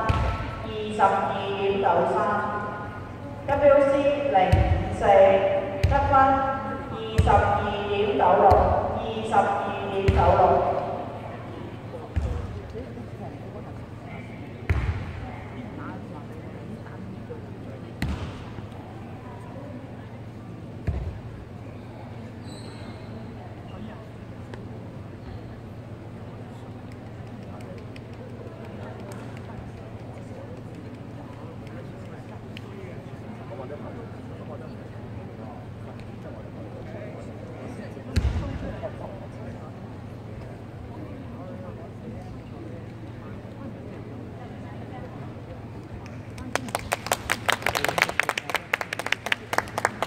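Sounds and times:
murmur of voices: 0:00.0 - 0:50.0.

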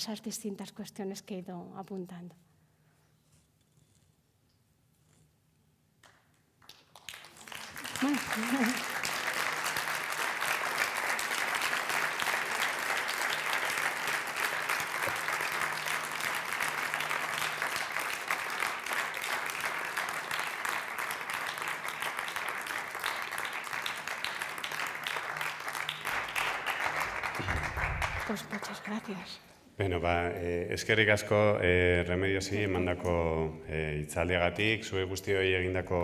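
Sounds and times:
audience applauding: 0:06.6 - 0:29.4.

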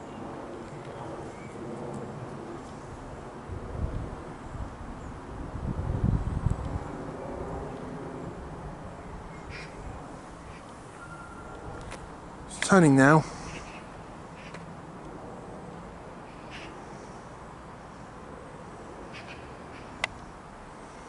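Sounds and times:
wind buffeting microphone: 0:00.0 - 0:14.2
distant airliner jet noise: 0:00.0 - 0:21.0.

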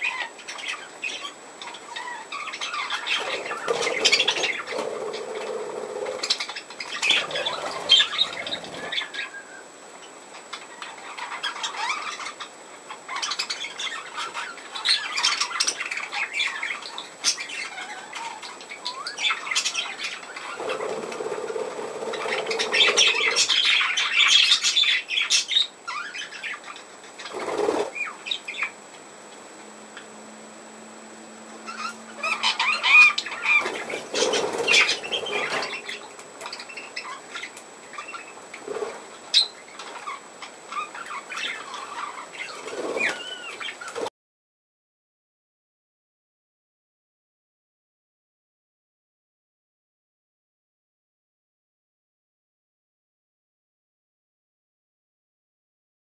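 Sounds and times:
budgerigars chattering and chirping: 0:00.0 - 0:09.4, 0:10.4 - 0:28.8, 0:31.7 - 0:44.0
wings fluttering: 0:02.9 - 0:09.3, 0:19.6 - 0:23.9, 0:27.2 - 0:28.2, 0:31.7 - 0:39.9, 0:41.7 - 0:44.1.

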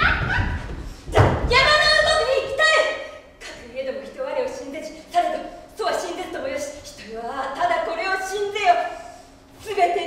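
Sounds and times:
heavy thud on wooden floor: 0:00.2 - 0:01.7.

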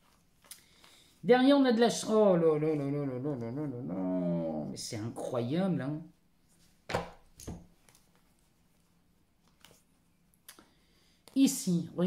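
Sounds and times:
tarot cards tapping: 0:06.9 - 0:08.3.

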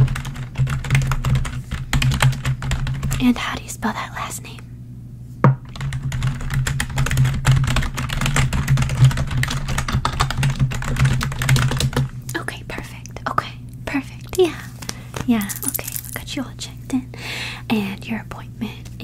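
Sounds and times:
computer keyboard typing: 0:00.1 - 0:03.1, 0:05.8 - 0:12.0.

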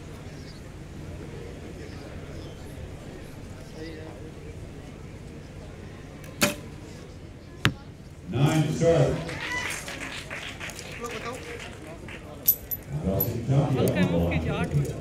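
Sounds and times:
bowstring snap: 0:06.2 - 0:06.7
arrow striking target: 0:06.4 - 0:06.7.

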